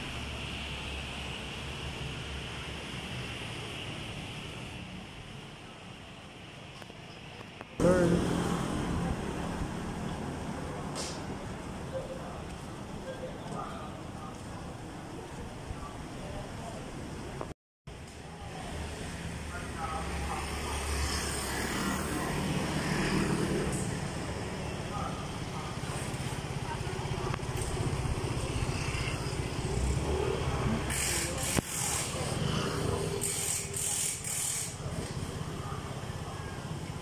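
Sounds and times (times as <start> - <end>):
hum of engines and tyres: 0.0 - 37.0
motor scooters going by: 7.8 - 12.6, 18.6 - 37.0
people's voices: 7.8 - 17.5, 23.6 - 37.0.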